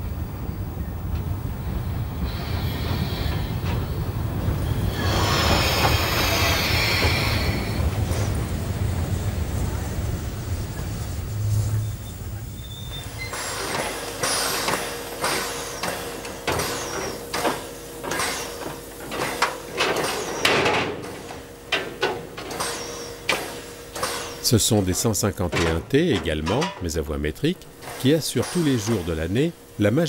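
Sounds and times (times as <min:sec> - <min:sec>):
steam locomotive humming: 0:00.0 - 0:30.0
train coaches rolling past: 0:00.0 - 0:30.0
sharp hisses of escaping steam: 0:02.2 - 0:20.4, 0:27.8 - 0:30.0.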